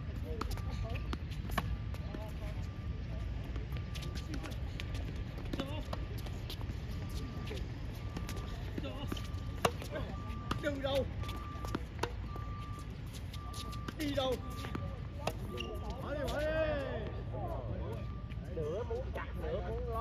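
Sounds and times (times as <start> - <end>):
voices: 0.0 - 20.0
tennis balls struck by racquets: 8.1 - 12.3.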